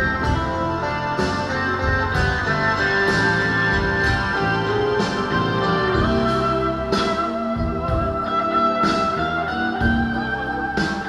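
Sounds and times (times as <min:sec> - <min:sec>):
bass: 0:00.0 - 0:11.0
electric guitar bending notes: 0:00.0 - 0:11.0.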